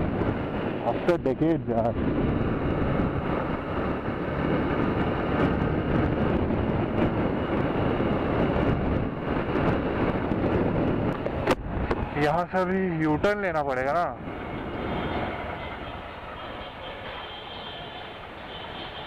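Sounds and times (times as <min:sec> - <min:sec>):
wind rushing on microphone: 0:00.0 - 0:16.4.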